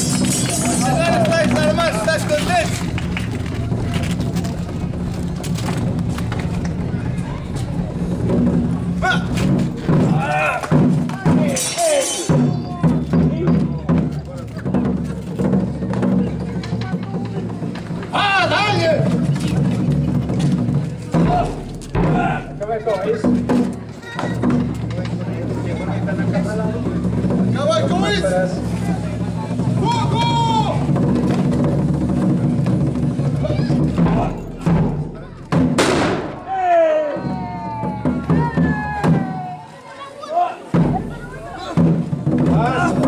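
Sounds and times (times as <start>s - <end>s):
live drums playing: 0.0s - 19.2s, 19.8s - 36.6s, 37.4s - 39.6s, 40.7s - 43.0s
loud shouts: 10.0s - 12.9s, 18.1s - 19.0s, 21.2s - 22.6s, 29.8s - 30.9s, 36.4s - 41.8s.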